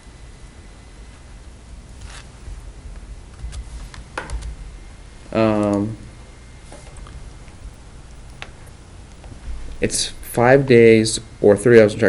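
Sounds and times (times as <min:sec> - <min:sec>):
room hum: 0:00.0 - 0:12.0
rustling scrape: 0:01.2 - 0:04.2.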